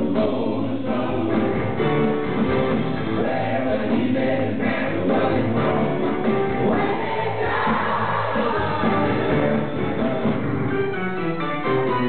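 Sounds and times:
voices singing together: 0:00.0 - 0:02.2, 0:03.0 - 0:10.6
bass guitar: 0:00.0 - 0:12.0
drums: 0:00.0 - 0:12.0
keyboard: 0:00.0 - 0:12.0.

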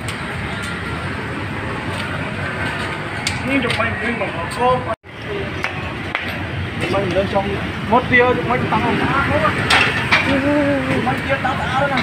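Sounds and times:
people talking: 0:03.4 - 0:05.8, 0:06.8 - 0:12.0.

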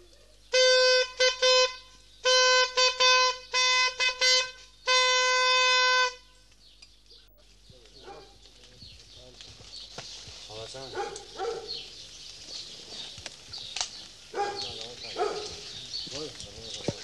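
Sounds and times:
hand-held signal horn toots: 0:00.5 - 0:06.4.

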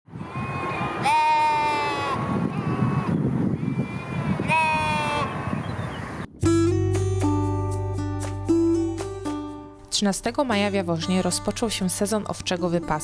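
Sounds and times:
lambs bleating: 0:01.0 - 0:03.2, 0:04.4 - 0:05.4.

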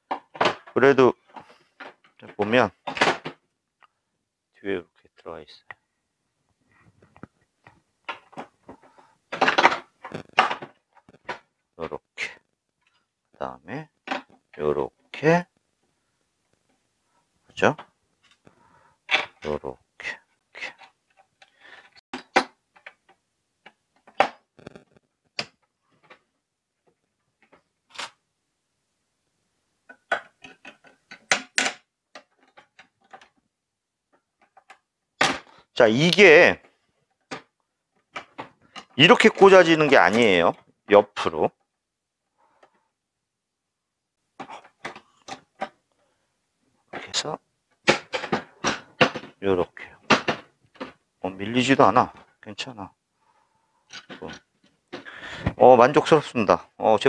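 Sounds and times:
plastic parts clicking and knocking: 0:00.0 - 0:04.0, 0:07.0 - 0:15.9, 0:17.6 - 0:19.8, 0:20.6 - 0:28.2, 0:29.8 - 0:41.8, 0:44.3 - 0:46.2, 0:46.8 - 0:52.4, 0:53.8 - 0:56.2.

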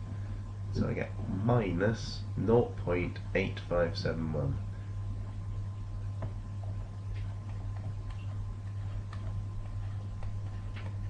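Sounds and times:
low electrical hum: 0:00.0 - 0:11.0
stylus tapping on screen: 0:06.0 - 0:11.0.

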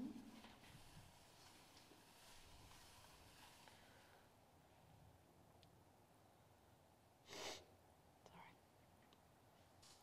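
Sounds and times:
breathy whisper: 0:07.4 - 0:08.6.

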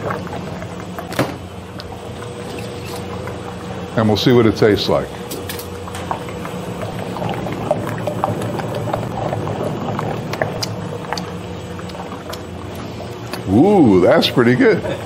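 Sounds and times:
ice cream machine humming: 0:00.0 - 0:15.0.

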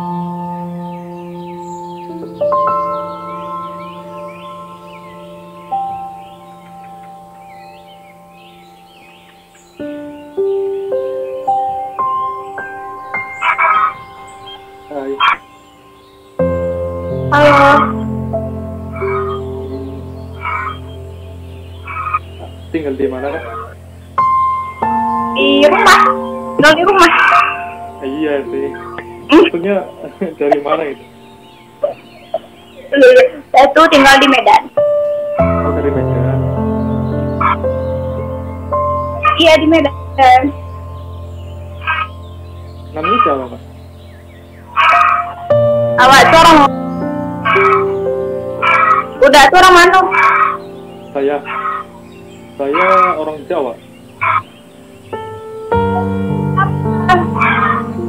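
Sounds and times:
calm bell-like ambient music: 0:00.0 - 0:33.6, 0:34.7 - 0:55.2
bird chirps: 0:00.0 - 0:58.0.

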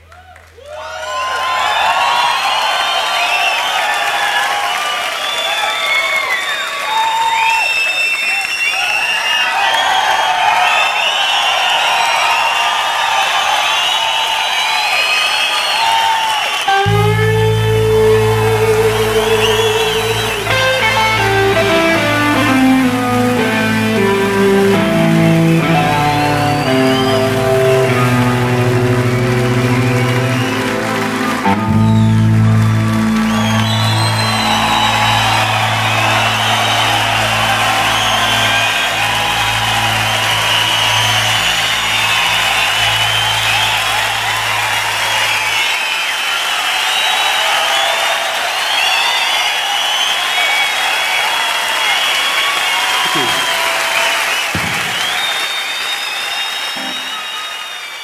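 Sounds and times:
audience cheering and whistling: 0:00.0 - 0:58.0
rock band closing chord: 0:16.7 - 0:45.2.

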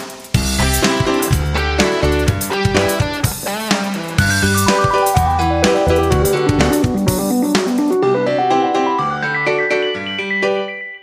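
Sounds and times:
plucked melody over bass line: 0:04.1 - 0:09.1.

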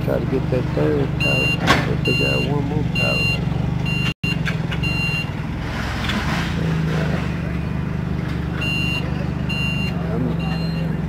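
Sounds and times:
low engine drone: 0:00.0 - 0:11.0
vehicle reversing alarm beeping: 0:01.0 - 0:05.4, 0:08.5 - 0:11.0.

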